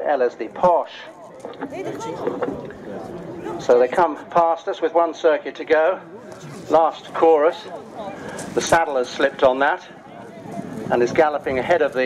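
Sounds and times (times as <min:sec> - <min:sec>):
indistinct voices talking quietly: 0:00.0 - 0:12.0
race commentary: 0:02.9 - 0:12.0.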